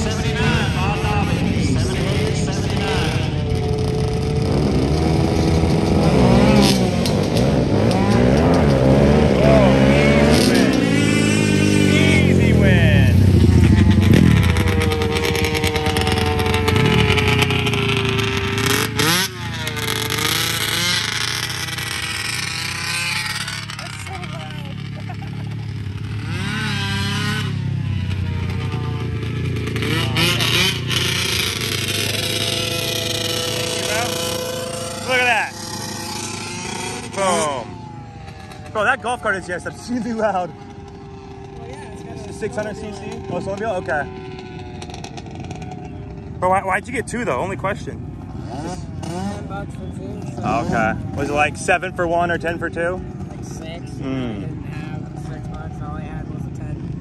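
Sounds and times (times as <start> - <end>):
racing engines revving: 0.0 - 57.0.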